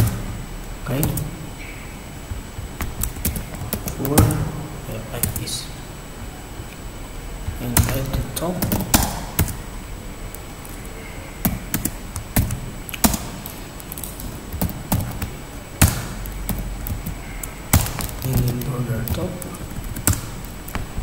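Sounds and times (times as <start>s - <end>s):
knocking strikes: 2.2s - 5.4s, 14.3s - 21.0s
keyboard keystrokes: 2.3s - 4.4s, 7.5s - 9.6s, 11.5s - 20.8s.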